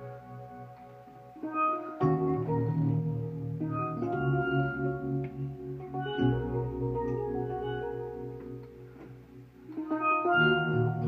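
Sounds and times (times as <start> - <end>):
steel pan melody: 0.0 - 9.0, 9.7 - 11.0
keyboard chords: 0.0 - 11.0.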